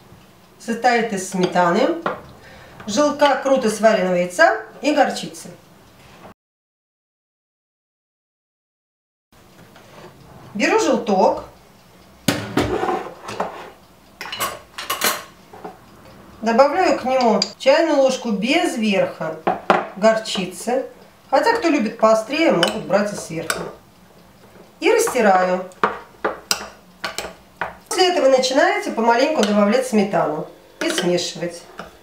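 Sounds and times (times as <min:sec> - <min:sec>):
plate clattering in metal sink: 0:12.3 - 0:13.6
metal spoon clinking on ceramic bowl: 0:22.6 - 0:23.7, 0:30.8 - 0:31.1.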